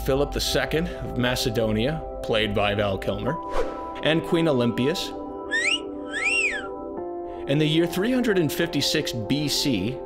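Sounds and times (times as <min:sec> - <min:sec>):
background music chords: 0:00.0 - 0:10.0
wolf whistle: 0:05.5 - 0:06.8.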